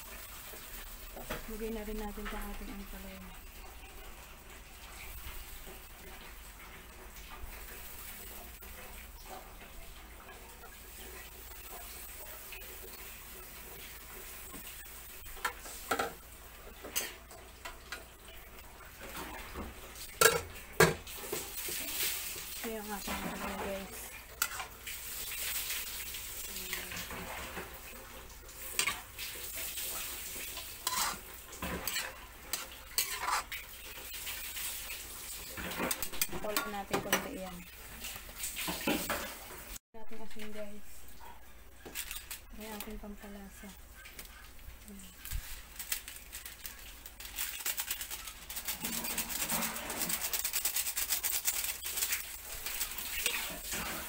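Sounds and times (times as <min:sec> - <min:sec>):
vegetables sizzling in oil: 0:00.0 - 0:54.0
metal spatula scraping in a wok: 0:21.1 - 0:27.7, 0:28.6 - 0:39.3, 0:47.8 - 0:54.0.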